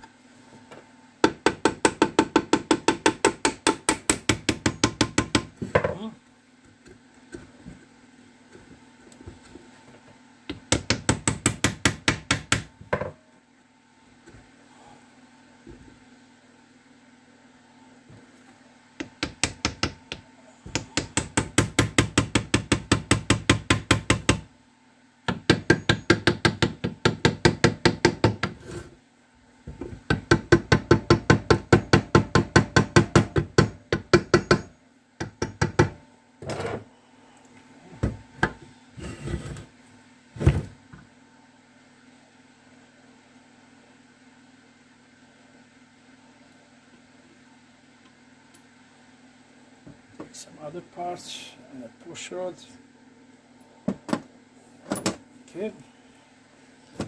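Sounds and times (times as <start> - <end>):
hammer on metal: 30.3 - 36.0.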